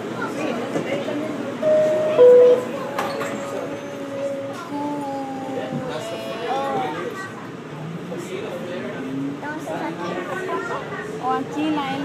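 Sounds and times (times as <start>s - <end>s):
subway train rumbling: 0.0s - 12.0s.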